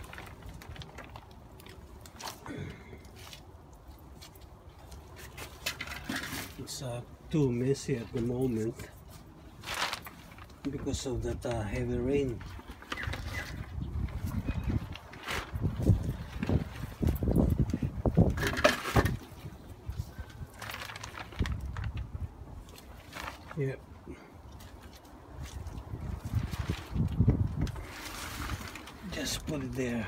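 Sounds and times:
plastic sheet rustling and knocking: 12.4s - 19.4s.

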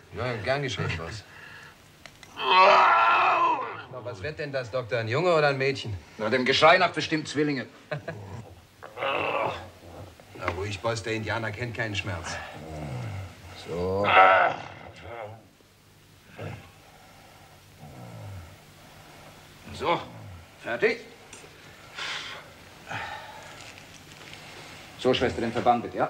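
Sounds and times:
man crying out in pain: 2.3s - 3.9s, 9.0s - 9.8s.

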